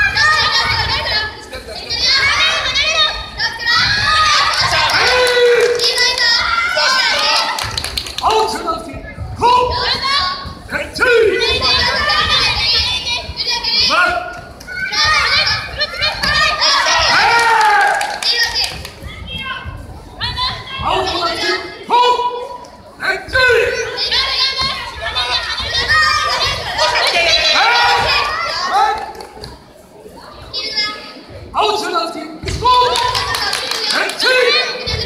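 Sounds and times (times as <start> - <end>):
children shouting: 0.0 - 7.9, 11.1 - 21.7, 23.3 - 29.2, 32.6 - 35.0.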